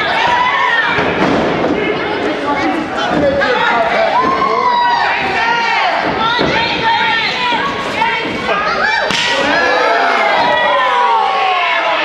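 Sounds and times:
spectators shouting: 8.8 - 12.0.

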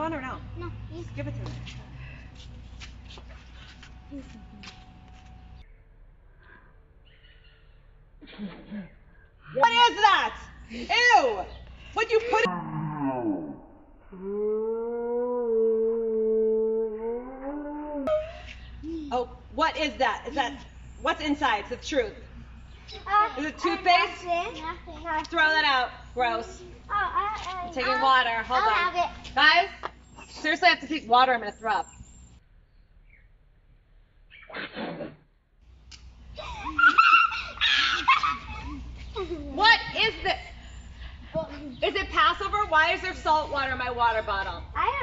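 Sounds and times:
woman retching: 8.2 - 9.0.

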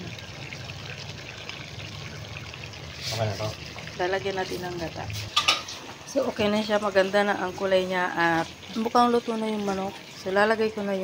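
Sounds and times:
sauce bubbling in a pan: 0.0 - 11.0.

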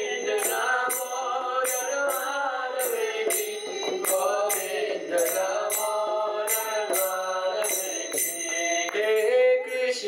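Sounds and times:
man chanting prayers: 0.0 - 10.0.

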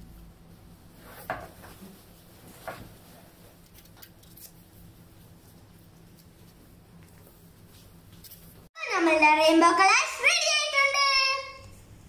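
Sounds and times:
paper towel rustling: 0.9 - 8.7.

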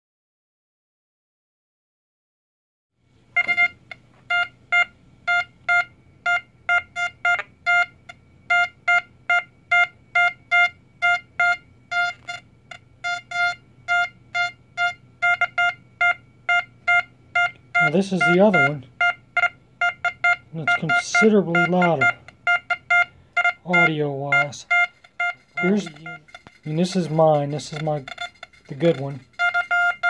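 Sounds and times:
metal detector beeping: 3.4 - 30.0.

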